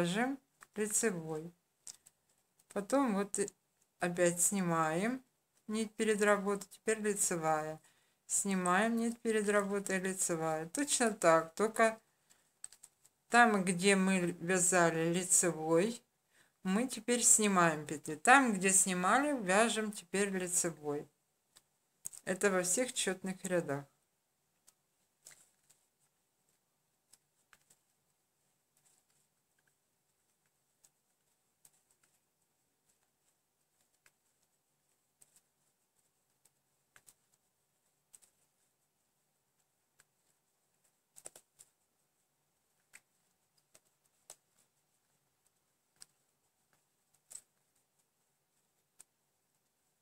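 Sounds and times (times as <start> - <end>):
knitting needles clicking: 0.4 - 1.0, 1.8 - 4.5, 8.5 - 13.4, 21.4 - 22.5, 24.5 - 50.0.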